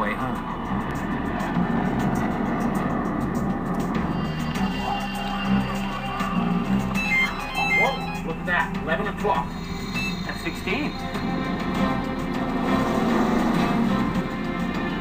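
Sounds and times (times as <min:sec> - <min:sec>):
music with low drone: 0:00.0 - 0:15.0
indistinct voice: 0:04.6 - 0:07.0
short electronic beeps: 0:06.8 - 0:08.4, 0:09.7 - 0:11.1.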